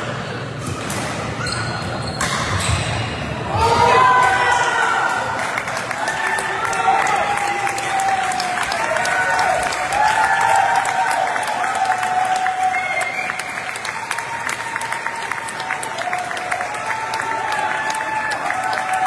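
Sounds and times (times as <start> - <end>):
audience clapping: 4.2 - 19.0.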